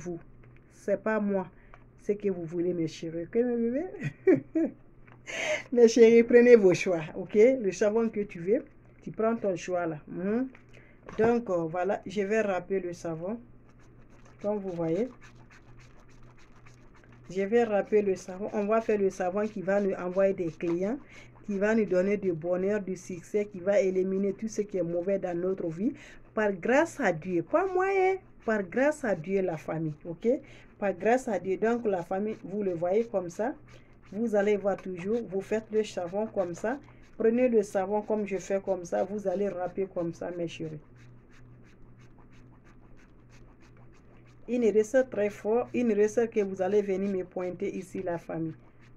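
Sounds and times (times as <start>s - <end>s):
soap scratching on metal grater: 11.2s - 48.9s.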